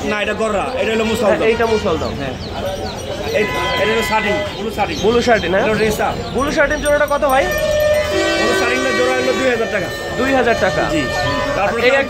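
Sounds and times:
people talking: 0.0 - 12.0
steady high tone: 6.6 - 12.0.

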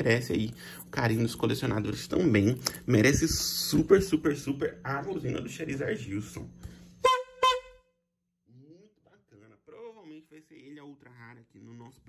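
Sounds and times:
horn honks: 7.0 - 7.9.

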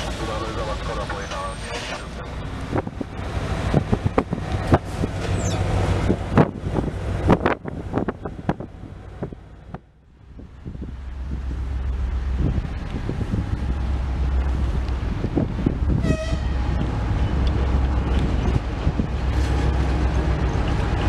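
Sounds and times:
diesel locomotive engine drone: 0.0 - 21.0
train wheels clattering over rail joints: 1.1 - 9.8, 16.6 - 21.0
locomotive horn toot: 16.0 - 16.6.

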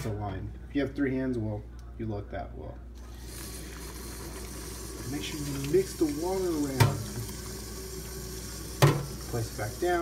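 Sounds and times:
faucet water running into bowl: 3.0 - 10.0.

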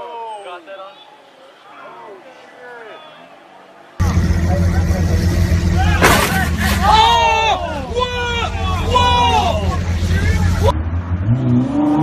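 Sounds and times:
vehicle engine rumbling: 4.0 - 12.0.

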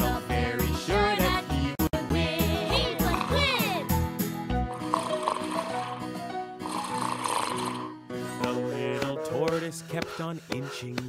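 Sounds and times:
bouncy children's song backing: 0.0 - 4.6, 8.2 - 11.0
sliding vocal sound: 2.4 - 3.9, 6.7 - 10.8
cartoon snoring: 2.8 - 3.9, 4.7 - 8.0.

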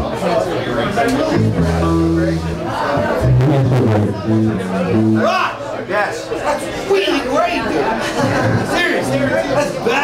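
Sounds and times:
crowd chatter: 0.0 - 10.0
live rock band playing: 1.4 - 5.6.

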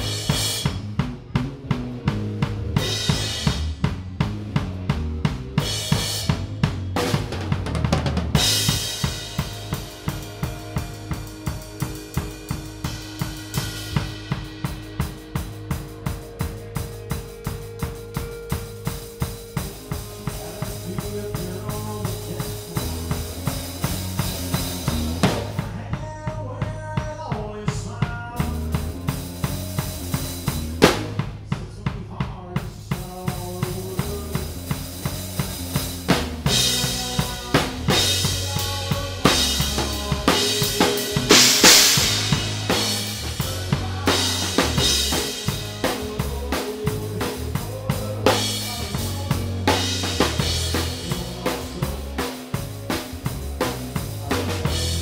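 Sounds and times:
sustained guitar notes: 0.0 - 25.7, 34.6 - 55.0
bass: 0.0 - 55.0.

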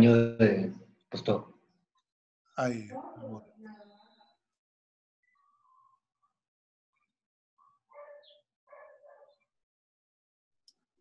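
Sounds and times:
dog barking faintly: 7.9 - 9.4.

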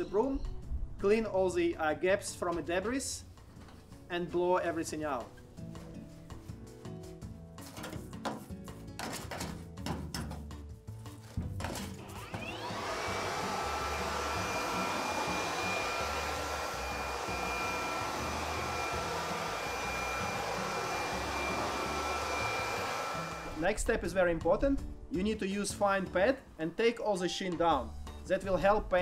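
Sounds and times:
leaf blower whine and blast: 12.0 - 23.6.

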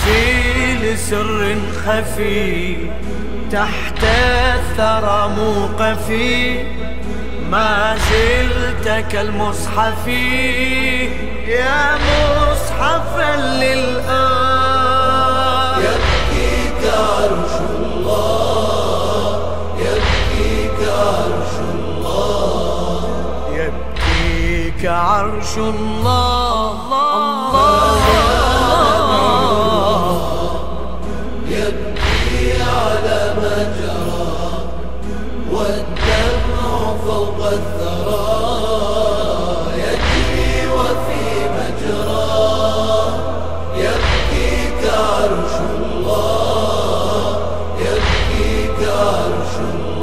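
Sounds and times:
men chanting in chorus: 0.0 - 50.0
steady low drone: 0.0 - 50.0.

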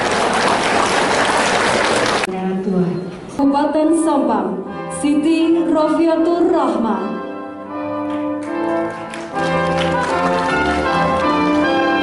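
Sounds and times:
audience applauding: 0.0 - 2.3, 8.1 - 12.0.

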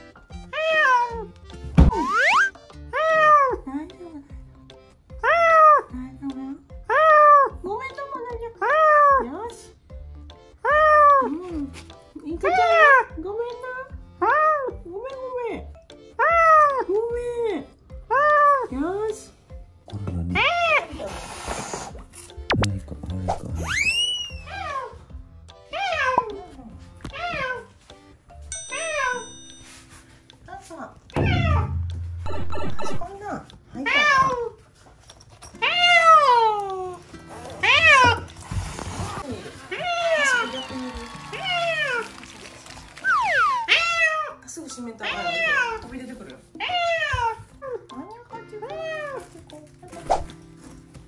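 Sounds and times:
cat yowling: 0.5 - 1.3, 23.8 - 25.0, 25.7 - 26.3, 33.8 - 34.5, 35.6 - 36.7, 37.6 - 38.3, 43.1 - 44.4, 45.0 - 45.9, 46.6 - 47.6.

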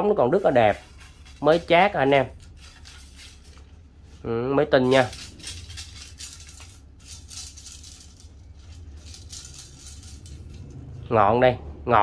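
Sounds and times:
hands rubbing along fishing rod: 0.0 - 4.2
low steady hum: 0.0 - 12.0
light rattles and clicks: 4.8 - 11.0.

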